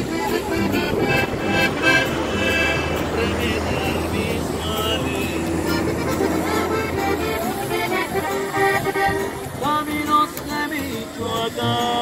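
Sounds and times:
bass line: 0:00.0 - 0:12.0
button accordion melody: 0:00.0 - 0:12.0
strummed acoustic guitar: 0:00.0 - 0:12.0.

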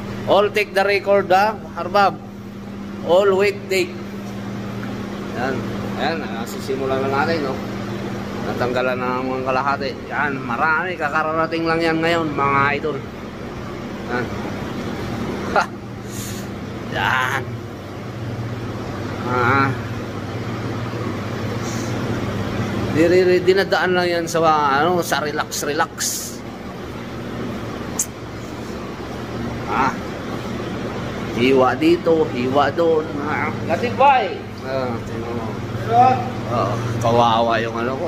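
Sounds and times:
refrigeration machinery hum: 0:00.0 - 0:38.0.

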